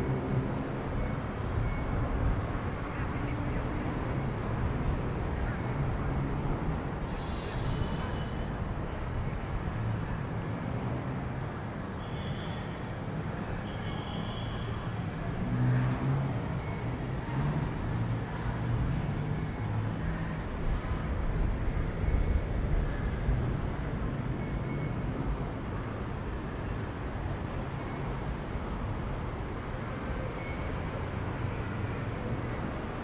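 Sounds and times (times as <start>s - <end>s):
city road traffic: 0.0s - 33.0s.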